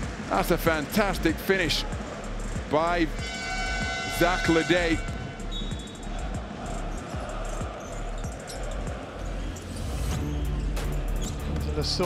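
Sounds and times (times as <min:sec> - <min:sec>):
crowd noise: 0:00.0 - 0:03.2, 0:04.1 - 0:12.0.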